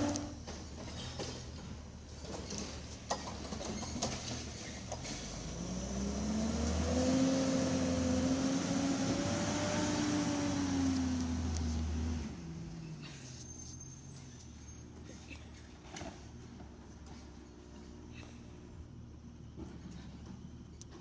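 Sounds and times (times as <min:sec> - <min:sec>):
garbage truck diesel engine revving: 0:00.0 - 0:00.4, 0:05.0 - 0:12.7.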